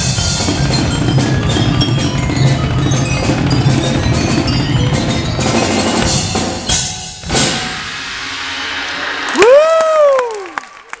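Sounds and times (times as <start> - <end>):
audience applauding: 8.9 - 11.0
person whooping: 9.3 - 10.8.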